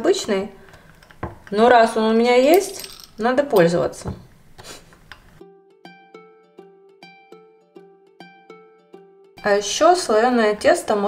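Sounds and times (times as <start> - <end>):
plucked string music: 5.3 - 11.0.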